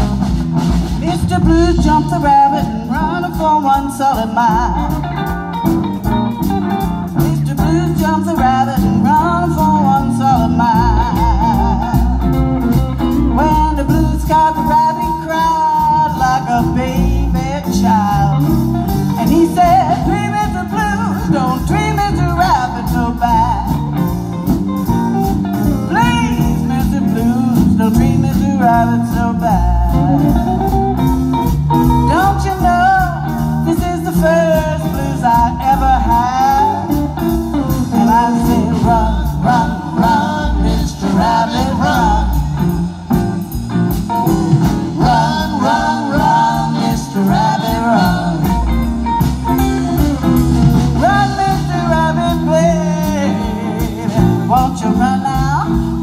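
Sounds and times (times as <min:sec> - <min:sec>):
blues band playing: 0:00.0 - 0:56.0.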